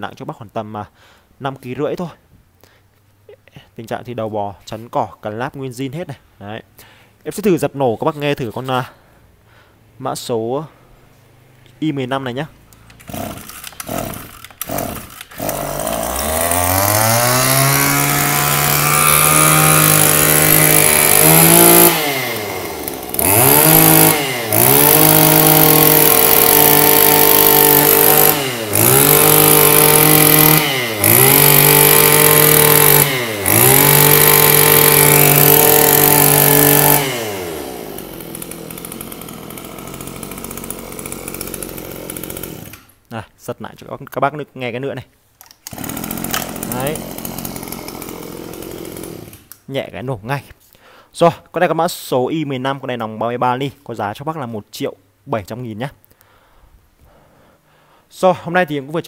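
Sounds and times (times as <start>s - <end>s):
brush cutter engine revving: 12.6s - 42.9s, 45.6s - 49.6s
pull starter tugs: 12.7s - 42.9s, 45.4s - 49.6s.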